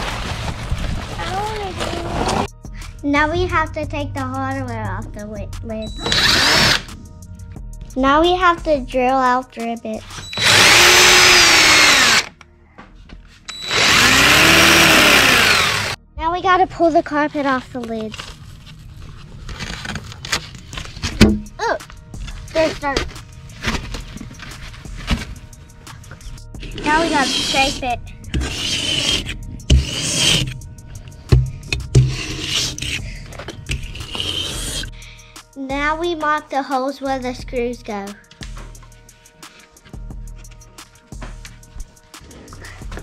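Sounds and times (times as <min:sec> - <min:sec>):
cardboard rustling and crinkling: 0:00.0 - 0:02.5, 0:17.4 - 0:26.3
carpet tearing and scraping: 0:00.0 - 0:02.5, 0:18.1 - 0:21.4, 0:26.6 - 0:30.6, 0:31.8 - 0:34.9.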